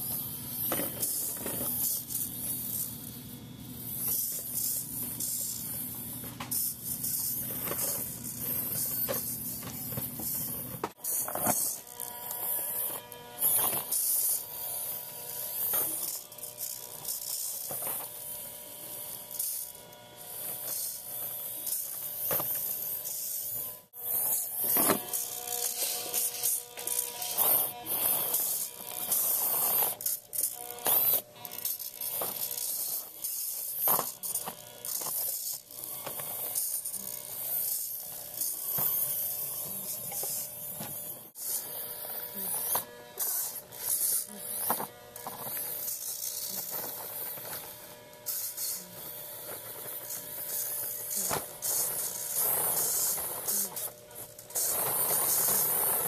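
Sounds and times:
small electric motor buzzing: 0.0 - 56.0.

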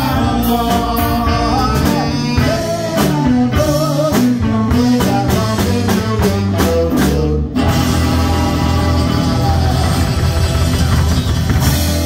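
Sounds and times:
rock band playing: 0.0 - 12.0.

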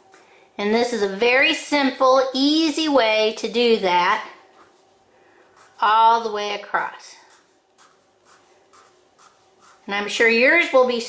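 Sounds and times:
marker scratching on paper: 4.5 - 9.9.

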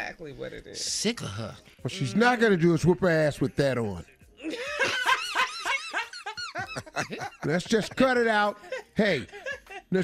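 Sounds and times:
people laughing: 4.4 - 10.0.

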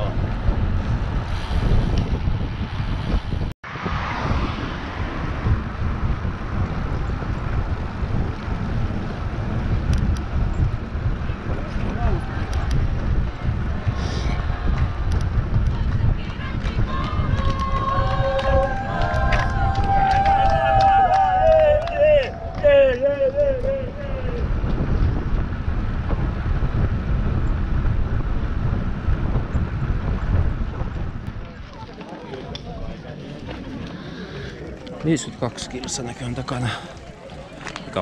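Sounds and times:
tyre noise on asphalt: 0.0 - 38.0
wind rushing over microphone: 0.0 - 38.0
people cheering: 13.4 - 24.6.

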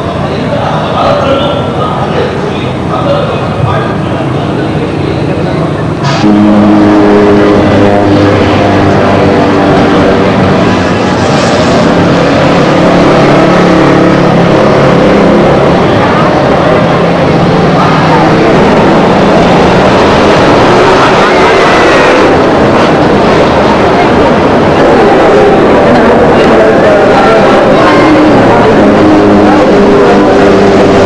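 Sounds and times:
people's voices: 0.0 - 31.0
road traffic: 0.0 - 31.0.

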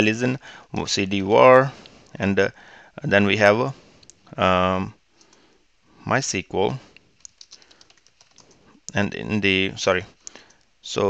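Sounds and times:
computer keyboard keys clicking: 7.2 - 8.6.

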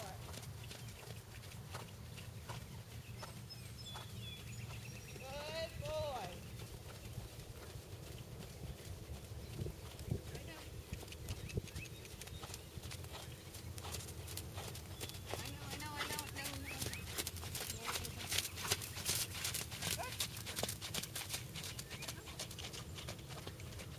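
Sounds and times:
horse hoofbeats trotting on sand: 0.0 - 23.9.

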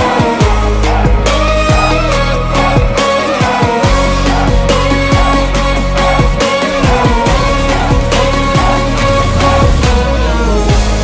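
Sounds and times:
electronic pop backing track: 0.0 - 11.0.

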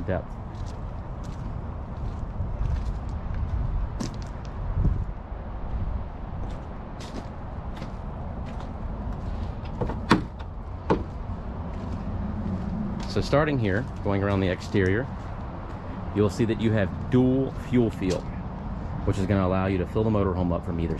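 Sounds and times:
low rumbling noise: 0.0 - 20.8
sharp knocks: 9.7 - 11.1.

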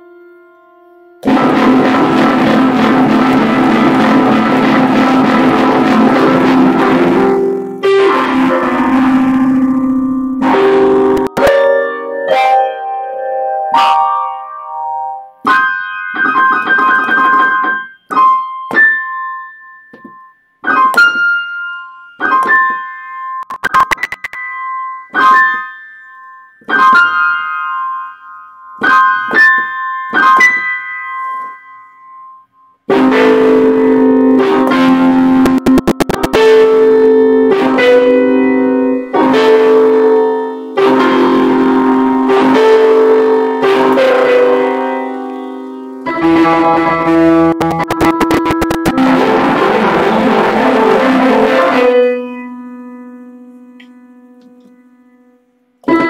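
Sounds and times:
electronic keyboard piano notes: 0.0 - 56.0.

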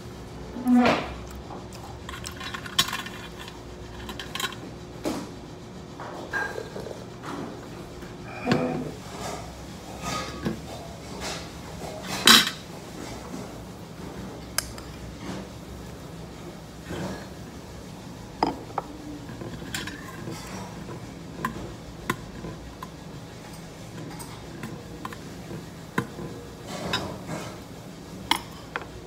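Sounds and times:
metal utensils clinking on steel bowl: 2.0 - 4.6, 10.0 - 12.6, 18.4 - 29.0.

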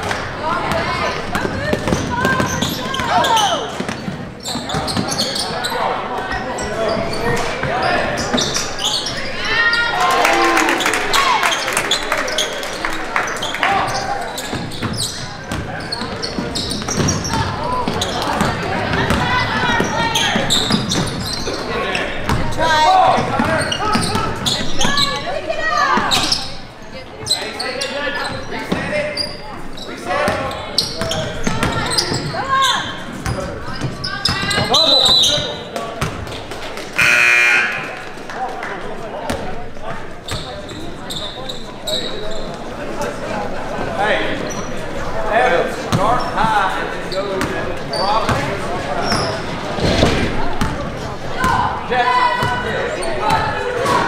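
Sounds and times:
voices echoing in gym: 0.0 - 54.0
basketball bouncing on wooden floor: 16.8 - 20.0
tone sounding: 37.0 - 38.0.

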